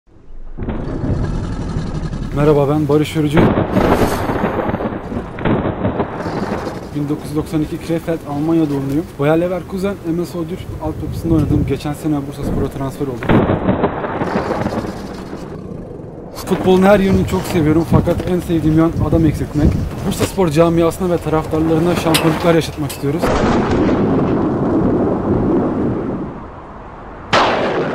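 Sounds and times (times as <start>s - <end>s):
low rumbling sound effect: 0.1s - 8.5s, 11.0s - 20.1s.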